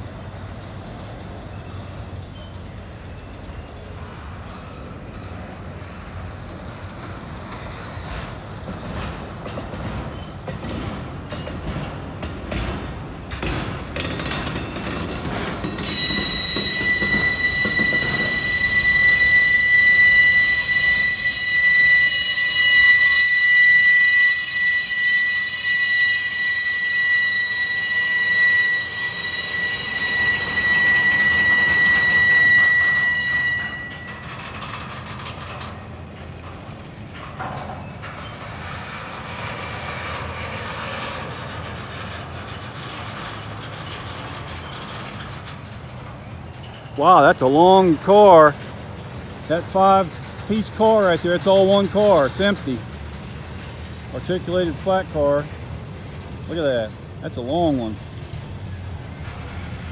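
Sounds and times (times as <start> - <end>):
freight cars rumbling and rattling: 0.0 - 26.4, 27.0 - 59.9
high-pitched wheel squeal: 14.8 - 35.8, 37.1 - 48.6.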